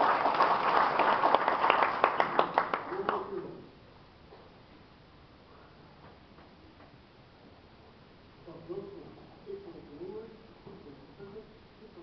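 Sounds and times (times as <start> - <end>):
faint footsteps on stage: 6.0 - 8.0.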